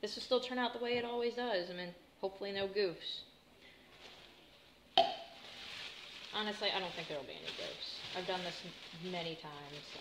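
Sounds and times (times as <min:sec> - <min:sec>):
plastic bag rustling: 0:05.2 - 0:10.0.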